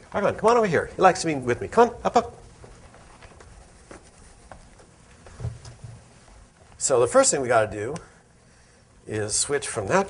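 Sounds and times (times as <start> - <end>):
footsteps on stage floor: 0.0 - 7.2.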